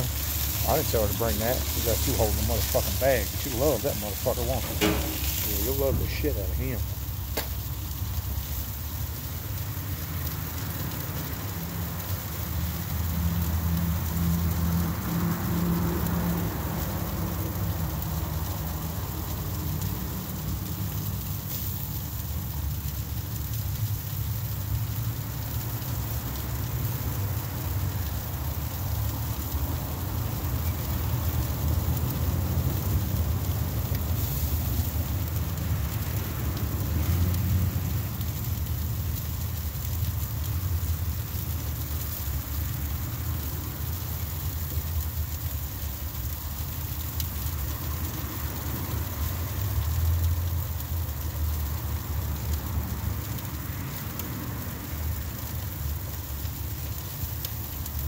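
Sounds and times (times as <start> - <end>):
food sizzling on a grill: 0.0 - 58.0.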